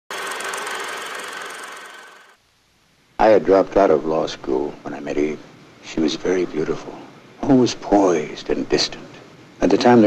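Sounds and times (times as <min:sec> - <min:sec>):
film projector whirring: 0:00.1 - 0:02.4.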